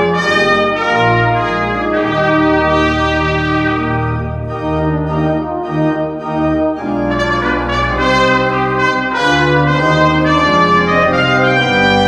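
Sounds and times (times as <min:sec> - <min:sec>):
organ accompaniment: 0:00.0 - 0:12.0
trumpet and french horn melody: 0:00.0 - 0:12.0.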